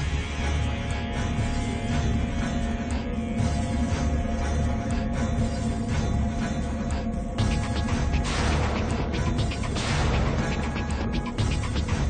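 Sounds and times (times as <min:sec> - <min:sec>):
drama background music: 0:00.0 - 0:12.0.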